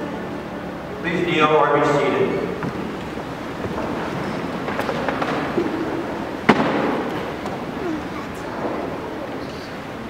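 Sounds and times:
people rustling: 0:02.1 - 0:10.0.

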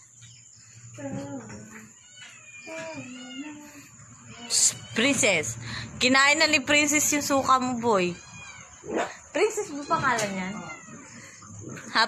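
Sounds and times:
cat meowing: 0:01.1 - 0:05.2, 0:08.0 - 0:11.2.

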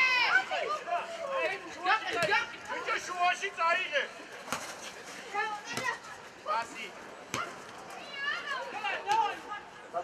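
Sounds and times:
children calling and shouting: 0:00.0 - 0:04.0.

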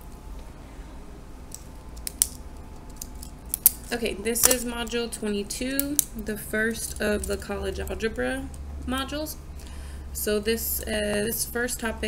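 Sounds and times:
plastic pens clicking and clattering: 0:02.0 - 0:04.7.

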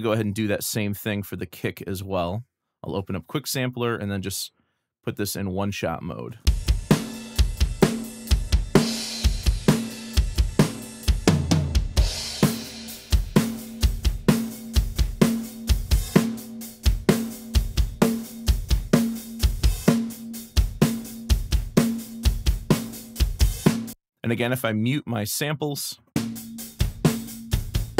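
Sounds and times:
drum kit playing a steady beat: 0:06.4 - 0:24.0, 0:26.2 - 0:27.9.

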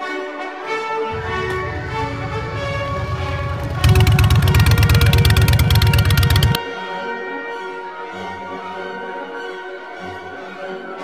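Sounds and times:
orchestral music with strings: 0:00.0 - 0:11.0
motorcycle engine pulsing: 0:01.1 - 0:06.6.

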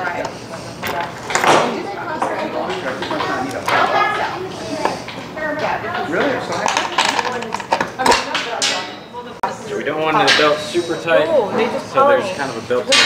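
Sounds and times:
indistinct voices talking: 0:00.0 - 0:13.0.

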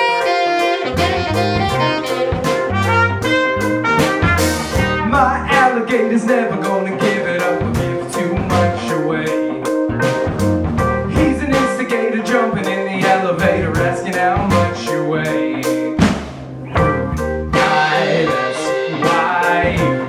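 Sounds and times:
saxophone: 0:00.0 - 0:05.4
electric guitar: 0:00.0 - 0:05.5
trumpet: 0:00.0 - 0:05.7
bass guitar: 0:00.0 - 0:20.0
keyboard: 0:00.0 - 0:20.0
drum beat: 0:00.8 - 0:05.9, 0:16.0 - 0:20.0.

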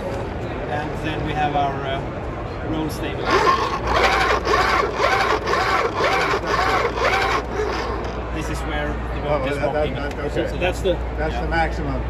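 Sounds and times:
electric actuators whirring: 0:03.1 - 0:09.2.

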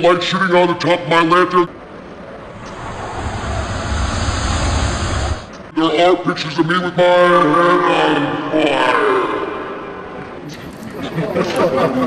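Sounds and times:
deep rumble: 0:02.3 - 0:05.7
rushing whoosh: 0:02.4 - 0:05.7.

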